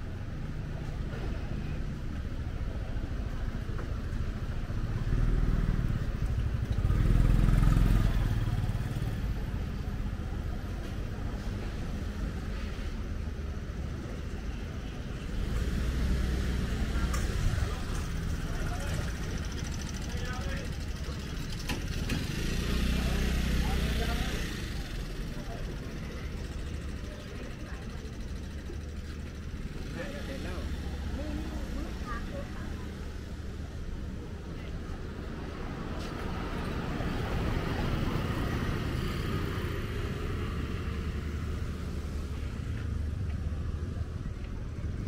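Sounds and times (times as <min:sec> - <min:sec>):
motorbikes passing: 0:04.6 - 0:12.6, 0:15.2 - 0:45.0.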